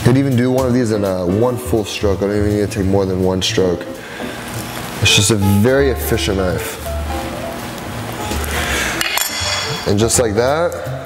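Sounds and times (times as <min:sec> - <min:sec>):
background music with bass line: 0:00.0 - 0:11.0
high clinking ring: 0:09.0 - 0:09.9.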